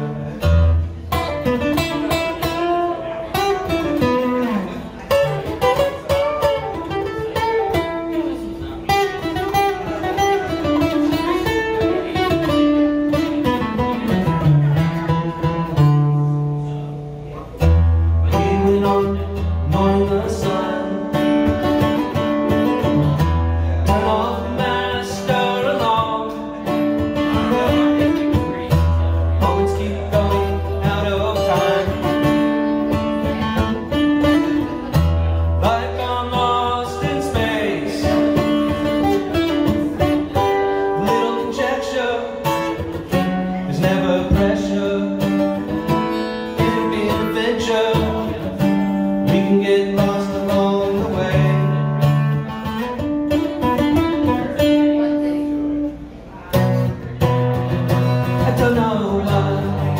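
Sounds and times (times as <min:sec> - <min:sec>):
acoustic guitar picked and strummed: 0:00.0 - 0:59.9
man singing: 0:18.2 - 0:55.3, 0:57.6 - 0:59.9.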